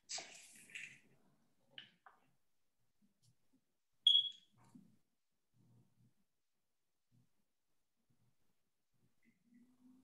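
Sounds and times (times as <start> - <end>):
short high-pitched beep: 4.1 - 4.4.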